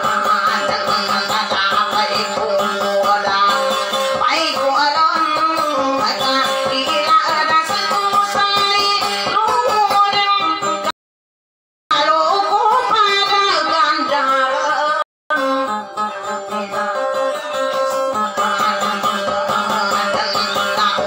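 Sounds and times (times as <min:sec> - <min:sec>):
acoustic guitar picked rhythm: 0:00.0 - 0:10.9, 0:15.3 - 0:21.0
woman singing into a microphone: 0:00.0 - 0:10.9, 0:11.9 - 0:21.0.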